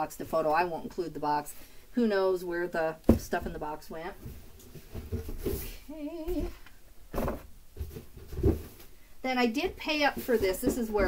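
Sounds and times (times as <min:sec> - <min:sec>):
objects bumping: 0:03.1 - 0:08.9, 0:09.6 - 0:11.0
rustling: 0:04.1 - 0:11.0.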